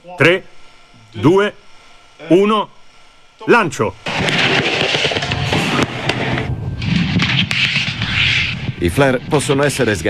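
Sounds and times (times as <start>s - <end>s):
flare burning with rushing hiss: 3.7s - 10.0s
sharp cracks: 4.0s - 9.8s.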